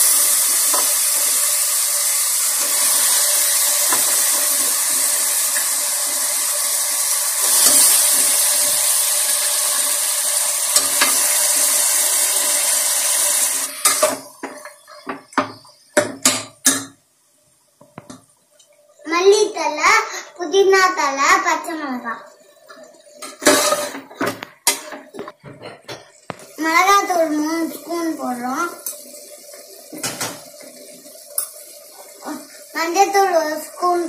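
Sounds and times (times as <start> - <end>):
meat sizzling and frying: 0.0 - 16.8, 22.6 - 25.6, 26.2 - 34.0.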